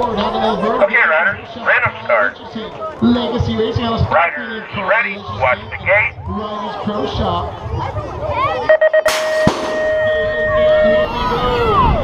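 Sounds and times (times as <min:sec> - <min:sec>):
quick beeps: 0:08.7 - 0:10.2.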